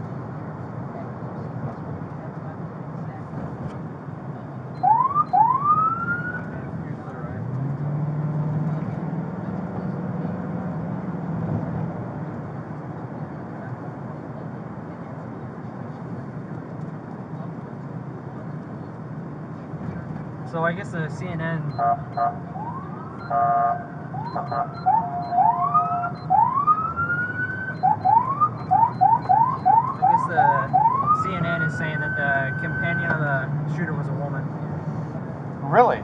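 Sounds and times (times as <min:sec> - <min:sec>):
car engine and road noise: 0:00.0 - 0:36.0
police siren whoops: 0:04.8 - 0:06.5, 0:22.5 - 0:31.4.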